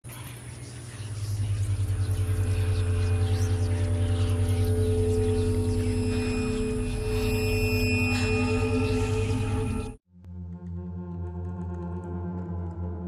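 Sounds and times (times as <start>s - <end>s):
steady higher drone tones: 0.9s - 10.0s
deep throbbing hum: 1.0s - 13.0s.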